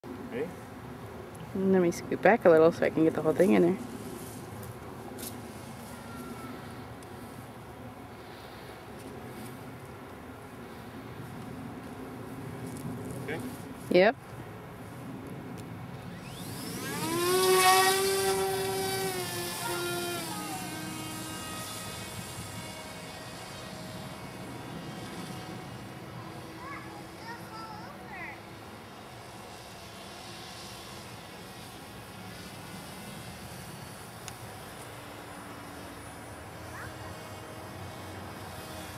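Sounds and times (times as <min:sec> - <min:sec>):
outdoor background hiss: 0:00.1 - 0:38.9
model plane motor whining: 0:02.2 - 0:09.7, 0:15.5 - 0:38.9.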